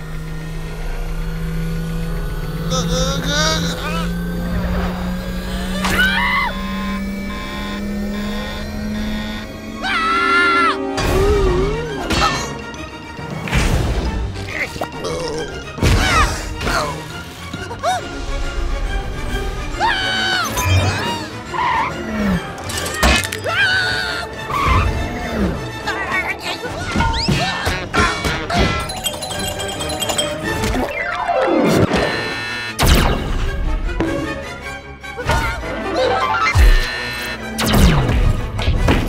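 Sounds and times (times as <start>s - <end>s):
spaceship engine hum with whine: 0.0s - 12.1s
background music: 0.0s - 39.0s
electronic beep: 28.7s - 32.8s.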